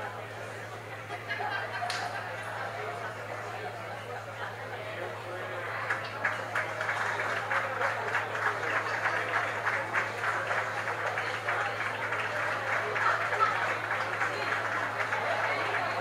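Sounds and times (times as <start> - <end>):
audience applauding: 1.5 - 16.0.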